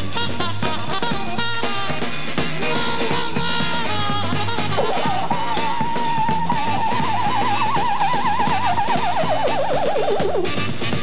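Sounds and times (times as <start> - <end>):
bass line: 0.0 - 11.0
drums: 0.0 - 11.0.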